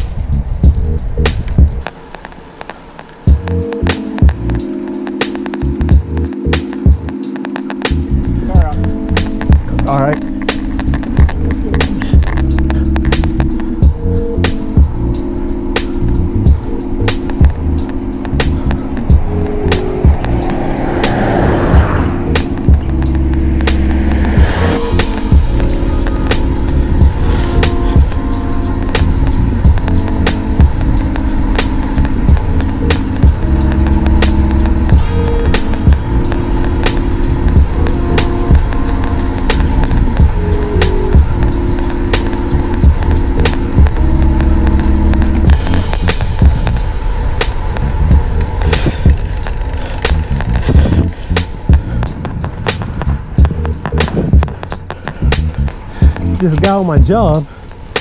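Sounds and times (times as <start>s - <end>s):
instrumental beat with drums and bass: 0.0s - 58.0s.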